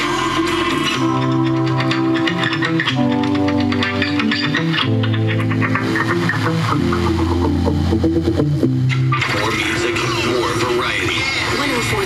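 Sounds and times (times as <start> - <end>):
pop music on car radio: 0.0 - 7.3, 9.0 - 12.0.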